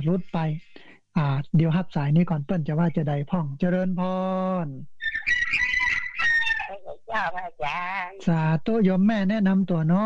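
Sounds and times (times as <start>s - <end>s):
man speaking: 0.0s - 4.9s, 6.9s - 10.0s.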